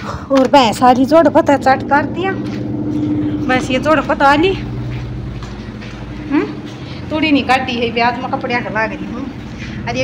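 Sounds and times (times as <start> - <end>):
low mechanical drone: 0.0 - 10.0
woman speaking: 0.3 - 2.5, 3.4 - 4.8, 6.2 - 10.0.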